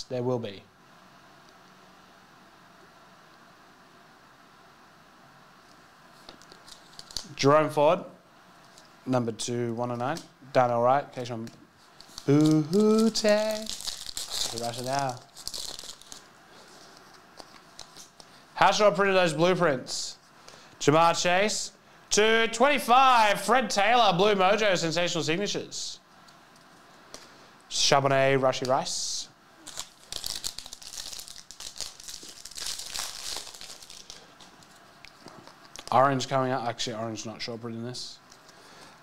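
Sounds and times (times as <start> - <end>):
plastic wrapper crinkling: 6.2 - 7.4, 11.4 - 18.4, 29.6 - 36.0.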